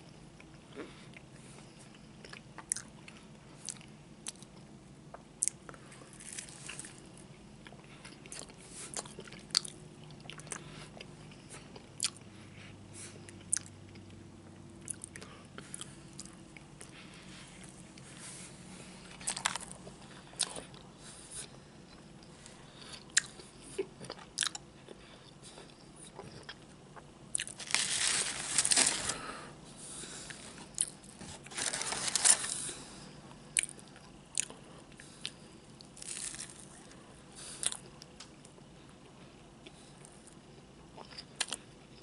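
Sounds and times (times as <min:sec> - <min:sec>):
chewing crunchy food: 0:00.4 - 0:18.1, 0:18.9 - 0:29.2, 0:33.6 - 0:42.0.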